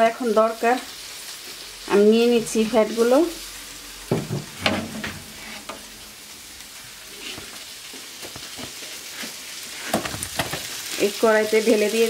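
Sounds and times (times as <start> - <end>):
fat sizzling in roasting tray: 0.0 - 12.0
utensil scraping metal tray: 4.2 - 5.9.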